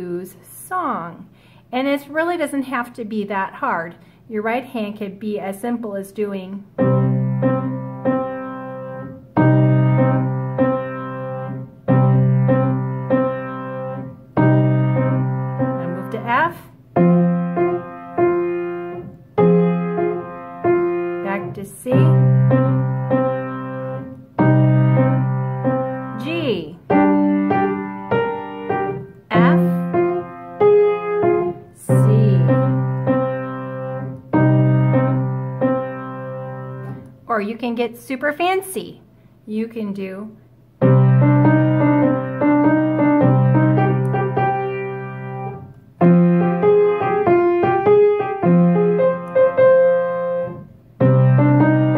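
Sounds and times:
piano playing blues: 6.7s - 37.1s, 40.8s - 51.9s.

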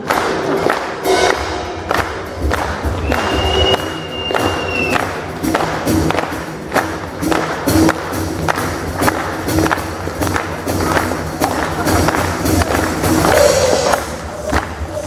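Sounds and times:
high whistle: 3.0s - 5.0s.

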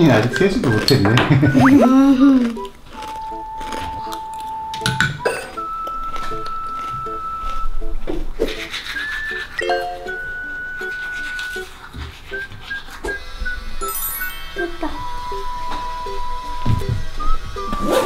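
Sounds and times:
light playful background music: 0.0s - 18.0s.

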